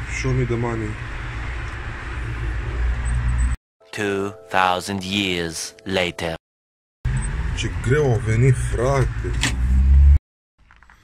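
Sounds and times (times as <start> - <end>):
street traffic rumble: 0.0 - 3.6, 7.1 - 10.2.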